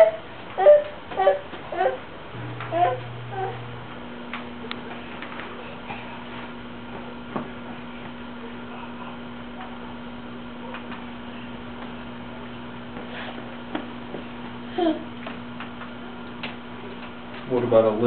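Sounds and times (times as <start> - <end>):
steady low hum: 0.0 - 18.0
footsteps tapping on hard floor: 13.0 - 14.6.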